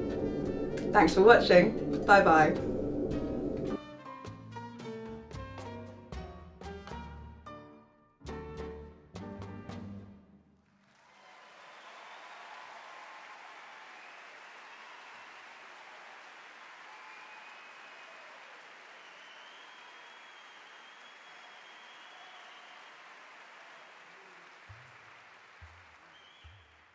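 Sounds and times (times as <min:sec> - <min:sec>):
faint steady noise: 0:00.0 - 0:03.8.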